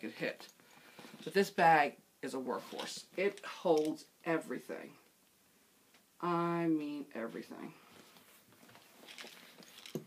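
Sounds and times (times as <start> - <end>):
handbag contents rustling: 8.6 - 10.0.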